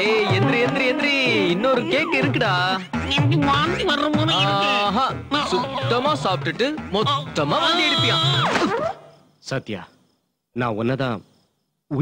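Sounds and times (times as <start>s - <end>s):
man calling out: 4.2s - 8.4s.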